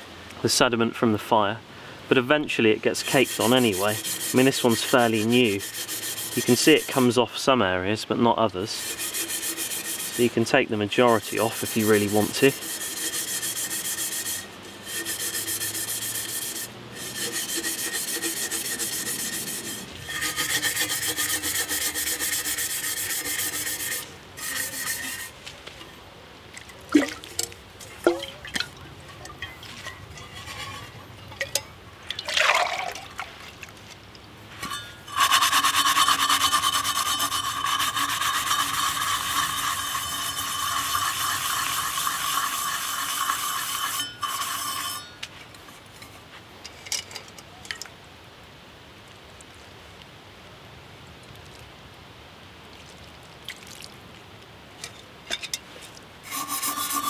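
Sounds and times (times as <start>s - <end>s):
scrubber scouring metal bottle: 2.6s - 7.5s, 8.1s - 25.9s, 26.9s - 31.6s, 34.5s - 47.0s, 54.8s - 57.0s.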